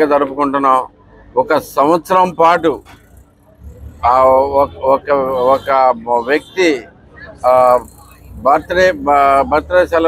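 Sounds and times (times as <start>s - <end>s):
man speaking: 0.0s - 3.0s, 4.0s - 10.0s
low rumble of passing vehicle: 0.9s - 10.0s.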